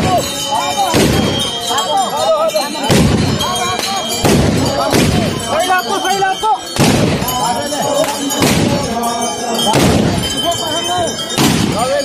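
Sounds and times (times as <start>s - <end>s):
men shouting: 0.0s - 12.0s
gunshots: 0.9s - 1.5s, 2.9s - 3.4s, 4.2s - 5.4s, 6.8s - 7.4s, 8.4s - 8.9s, 9.8s - 10.3s, 11.4s - 11.8s.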